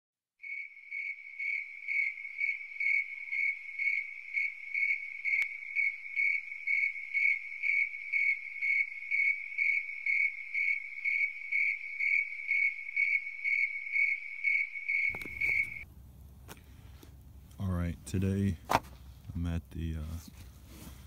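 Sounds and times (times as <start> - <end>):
high pulsing insect-like chirping: 0.4 - 15.8.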